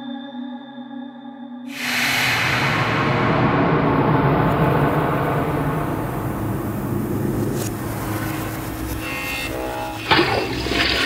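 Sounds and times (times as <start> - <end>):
loud rushing whoosh: 1.7 - 9.5
low dark drone: 1.7 - 11.0.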